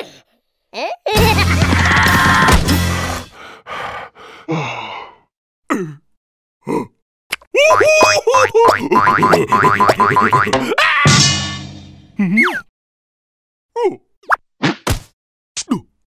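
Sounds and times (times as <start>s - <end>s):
gleeful vocalising and laughter: 0.8s - 2.5s, 7.6s - 9.8s
cartoon character yelps: 7.6s - 8.7s, 10.7s - 11.1s
boing-like sound effects: 8.9s - 11.2s.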